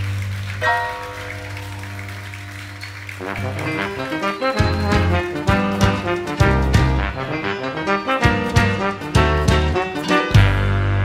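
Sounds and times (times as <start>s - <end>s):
samba-jazz band playing: 1.1s - 11.0s.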